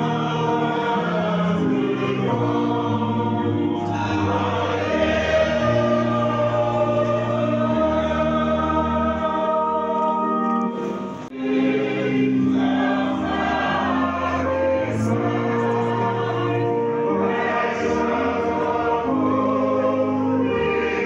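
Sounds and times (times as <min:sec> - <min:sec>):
choir singing a hymn: 0:00.0 - 0:21.0.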